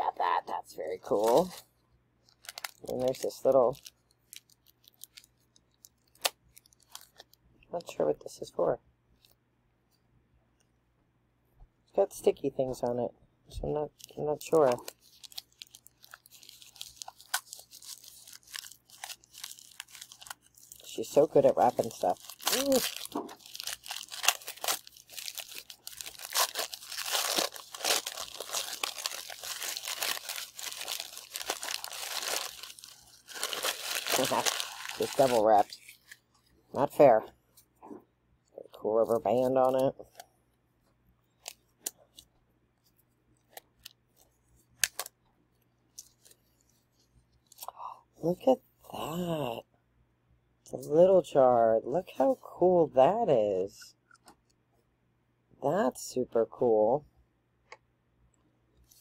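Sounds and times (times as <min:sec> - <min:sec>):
packaging crinkling: 0:01.0 - 0:07.4, 0:14.0 - 0:36.4, 0:43.4 - 0:45.1.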